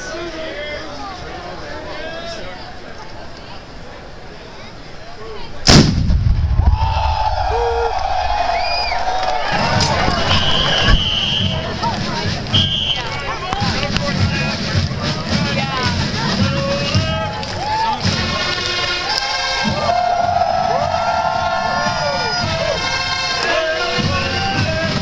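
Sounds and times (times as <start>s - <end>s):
cannon firing boom: 5.7s - 7.5s
crowd shouting and whooping: 6.6s - 12.0s, 17.0s - 18.1s, 19.0s - 24.8s.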